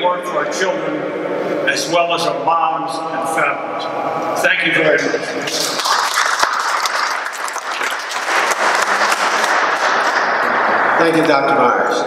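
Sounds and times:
audience applauding: 5.4s - 10.6s.

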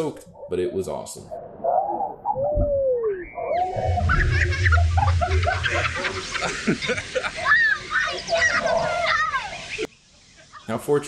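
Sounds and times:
low rumble: 3.6s - 7.3s
water rushing and splashing: 4.0s - 9.9s.

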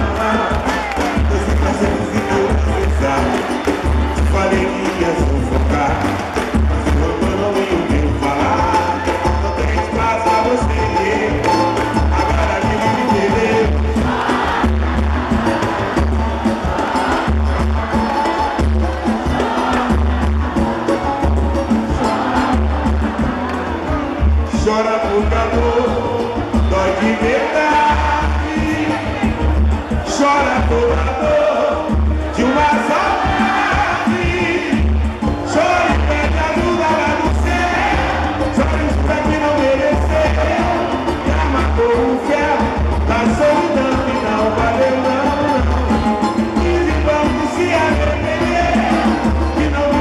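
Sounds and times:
crowd noise: 0.0s - 50.0s
low drum beat: 0.0s - 50.0s
samba band playing: 0.0s - 50.0s.

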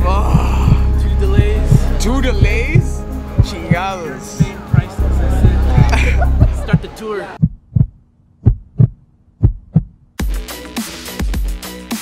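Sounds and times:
heartbeat thumps: 0.0s - 10.1s.

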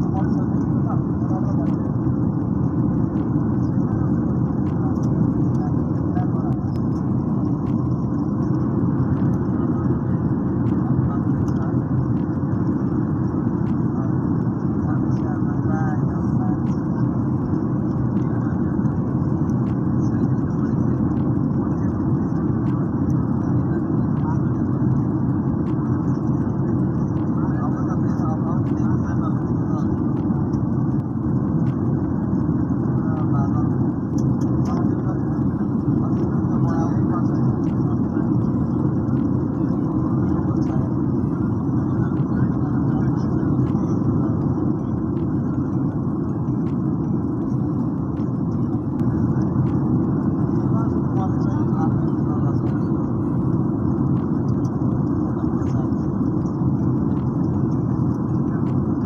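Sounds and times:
airliner cabin engine rumble: 0.0s - 59.0s
faint steady hum: 0.0s - 59.0s.

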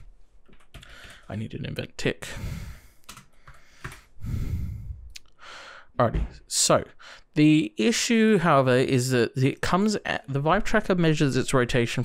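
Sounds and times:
intake of breath: 0.8s - 1.3s, 2.3s - 5.9s
man speaking: 1.3s - 2.5s, 6.0s - 12.0s
man exhaling: 4.2s - 5.9s.

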